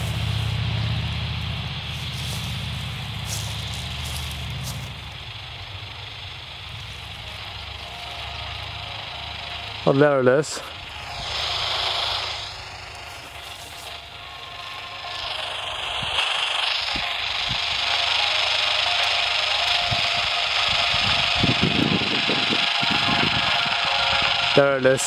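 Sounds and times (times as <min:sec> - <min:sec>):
radio static hiss: 0:01.7 - 0:08.6, 0:09.7 - 0:25.0.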